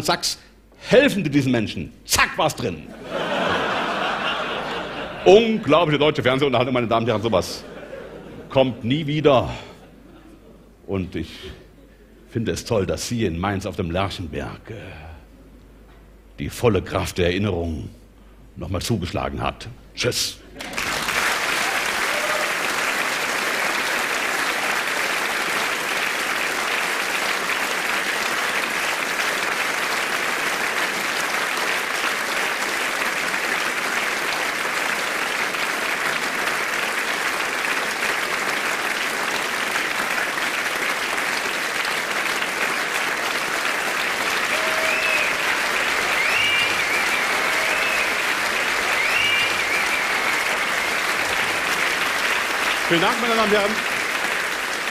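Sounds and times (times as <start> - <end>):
audience applauding: 3.1 - 5.4, 20.6 - 54.9
whistles: 44.6 - 48.2, 48.8 - 50.7.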